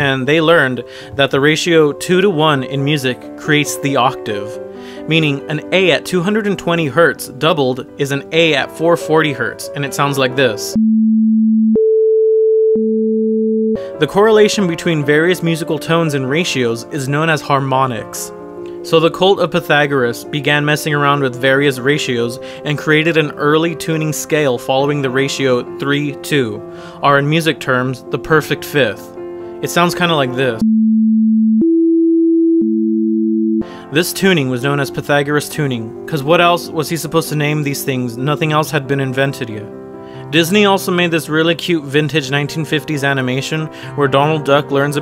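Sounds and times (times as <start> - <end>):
sine-wave test tones: 10.8 - 13.8, 30.6 - 33.6.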